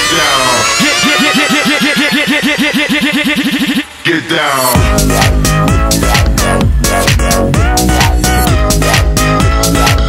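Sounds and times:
dubstep music synth stabs: 0.0s - 10.0s.

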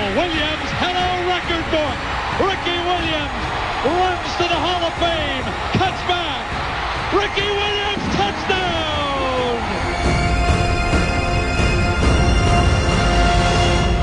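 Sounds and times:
announcer shouting excitedly: 0.0s - 9.8s
stadium crowd cheering: 0.0s - 14.0s.

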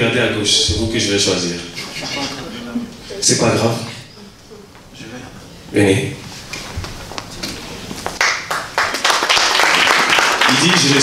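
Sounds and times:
audience clapping: 8.0s - 11.0s.

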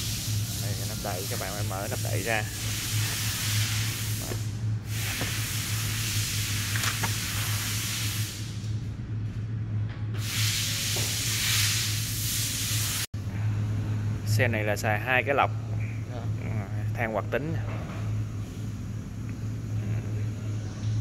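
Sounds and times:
air hissing: 0.0s - 8.7s, 10.2s - 13.1s
steady low hum: 0.0s - 21.0s.

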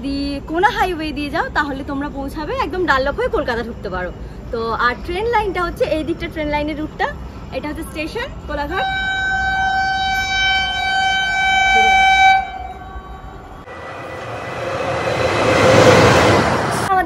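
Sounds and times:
rushing rumble of arriving train: 0.0s - 17.0s
train horn blast: 8.8s - 16.7s.

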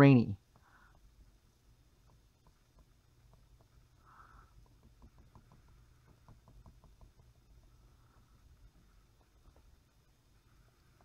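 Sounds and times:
pen tapping and scratching on glass: 1.9s - 7.9s, 8.7s - 9.9s.

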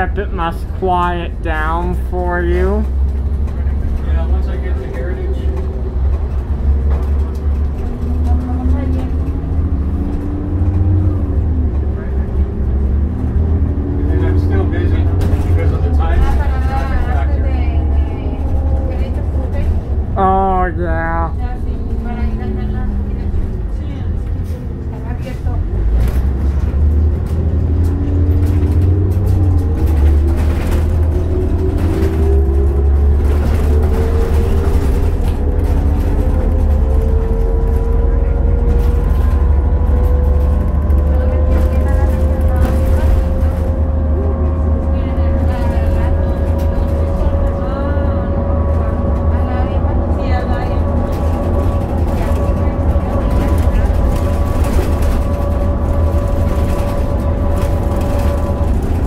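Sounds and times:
bus engine and road rumble: 0.0s - 59.0s.

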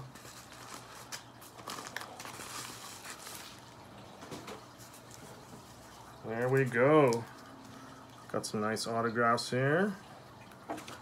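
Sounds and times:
paper and plastic crinkling: 0.0s - 7.9s.

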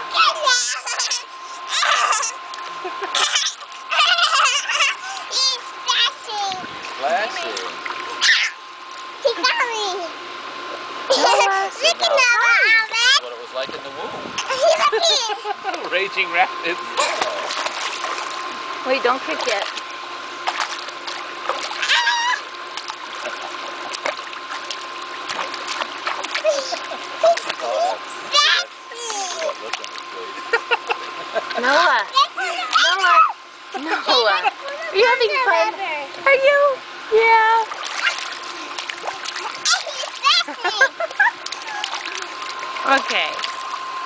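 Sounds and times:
baby slapping pool water: 0.4s - 9.8s, 16.9s - 30.2s, 37.5s - 44.0s
child calling out: 8.2s - 8.6s, 21.8s - 22.5s, 28.3s - 29.4s, 39.7s - 40.8s
hands splashing water: 17.0s - 18.5s, 22.6s - 27.6s, 37.7s - 40.2s, 41.4s - 43.8s.

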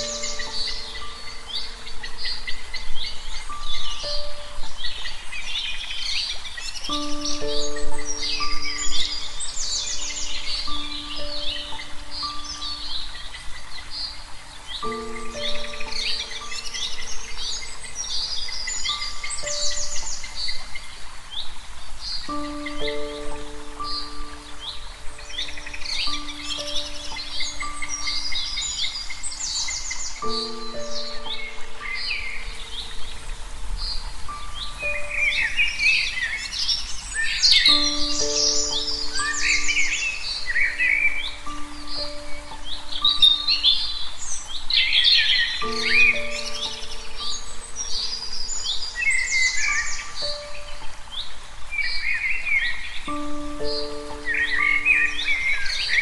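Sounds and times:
small birds chirping: 0.0s - 56.0s
soft music of held notes: 0.0s - 56.0s.

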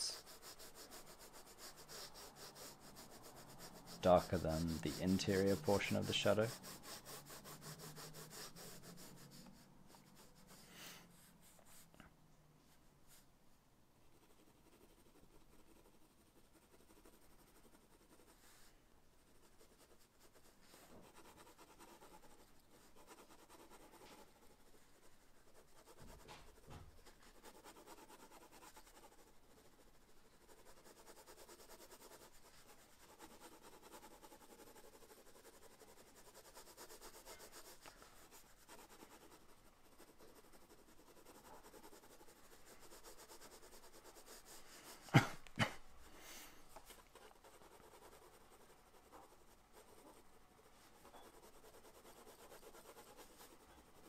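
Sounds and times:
pencil scratching on paper: 0.0s - 12.0s, 14.0s - 54.0s.

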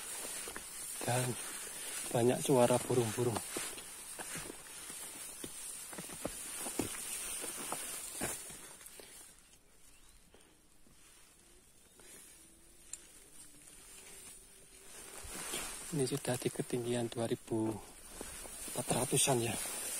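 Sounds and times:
footsteps on dirt trail: 0.0s - 9.4s, 13.0s - 19.9s
faint high-pitched forest hiss: 0.0s - 19.9s.

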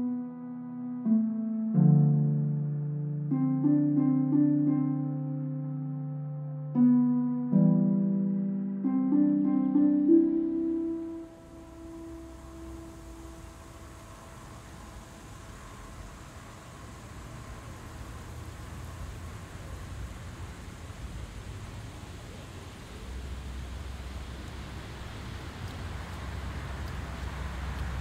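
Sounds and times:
even hiss: 10.1s - 28.0s.

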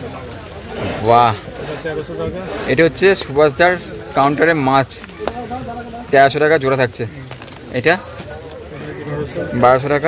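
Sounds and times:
bird calling: 3.5s - 9.9s.

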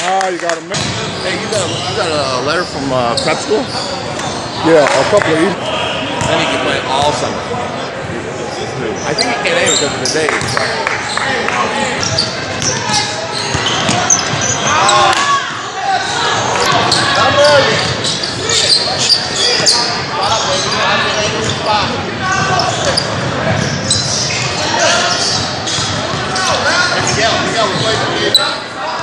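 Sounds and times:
sneakers squeaking: 0.8s - 5.1s, 8.4s - 29.0s
voices calling out: 1.0s - 29.0s.

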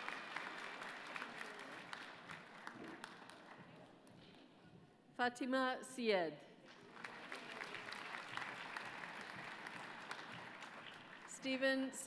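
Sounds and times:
audience applauding: 0.0s - 3.6s, 6.7s - 11.4s.

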